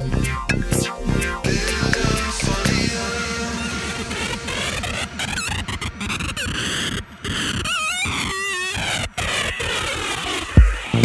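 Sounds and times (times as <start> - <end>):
gliding pitched tones: 0.0 - 11.0
noisy synthesizer texture: 0.0 - 11.0.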